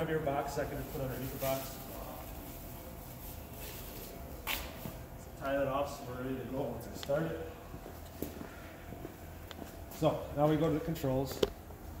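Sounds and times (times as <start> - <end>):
plastic stretch film rustling: 0.5 - 4.8.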